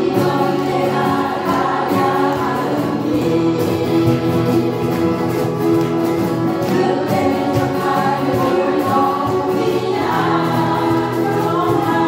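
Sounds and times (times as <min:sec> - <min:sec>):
women singing together: 0:00.0 - 0:05.6, 0:06.5 - 0:12.0
acoustic guitars strumming: 0:00.0 - 0:12.0.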